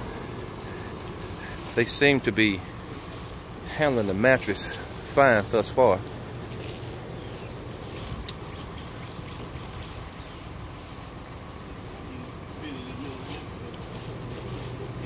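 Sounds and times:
faint voices: 0:00.0 - 0:15.0
outdoor background noise: 0:00.0 - 0:15.0.

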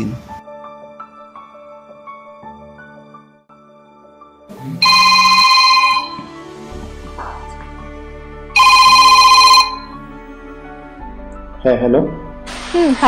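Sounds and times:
mobile phone ringing: 0:04.8 - 0:06.4, 0:08.6 - 0:10.0.

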